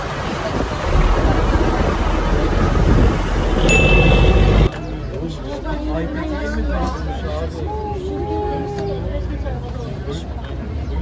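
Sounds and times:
wind rumbling on microphone: 0.0s - 3.8s
boat and water noise: 0.0s - 6.8s
crowd chattering: 0.0s - 11.0s
high steady beep: 3.7s - 4.9s.

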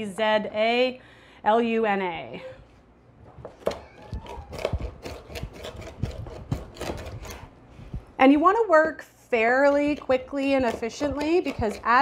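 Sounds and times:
rocking knife chopping on wooden board: 4.6s - 7.4s, 9.9s - 12.0s.

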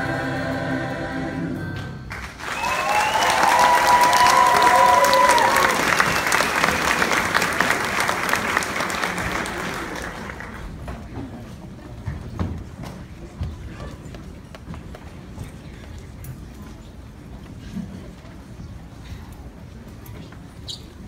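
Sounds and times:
choir singing: 0.0s - 2.1s
audience applause: 2.1s - 10.8s
audience cheering and whooping: 2.4s - 7.4s.

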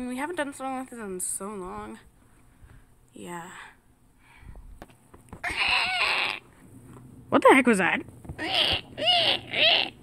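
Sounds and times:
person screeching like a dinosaur: 5.4s - 6.4s, 8.4s - 10.0s.

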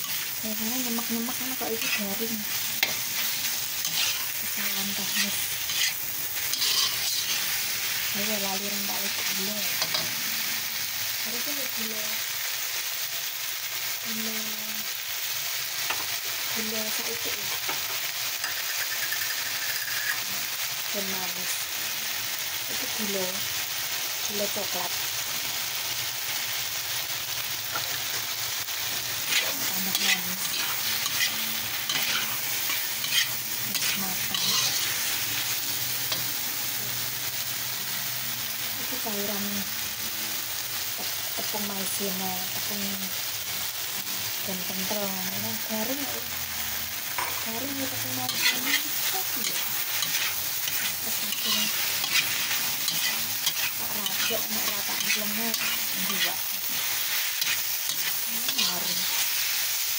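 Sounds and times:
spatula stirring in a wok: 0.0s - 10.2s, 27.7s - 36.4s, 47.1s - 59.9s
food sizzling in a wok: 0.0s - 59.9s.

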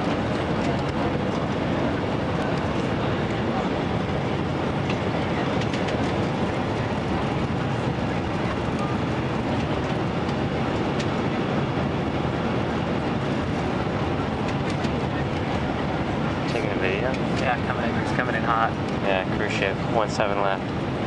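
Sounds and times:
jet engine and airflow rush: 0.0s - 21.0s.

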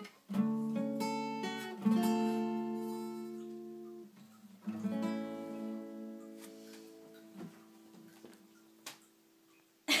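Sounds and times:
acoustic guitar chord ringing: 0.0s - 9.6s.

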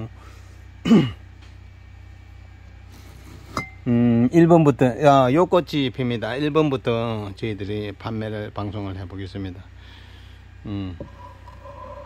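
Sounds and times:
low steady hum: 0.0s - 12.0s
man coughing: 0.8s - 1.2s.

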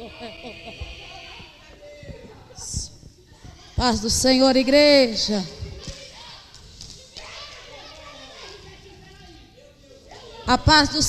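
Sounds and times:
congregation murmuring in echoing hall: 0.0s - 11.0s.

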